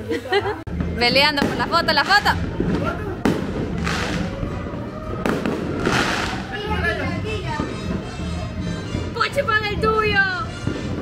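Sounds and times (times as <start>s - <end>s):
low background music: 0.0s - 11.0s
firework bang: 1.4s - 6.8s
firework hissing crackle: 3.2s - 4.6s, 5.2s - 6.8s.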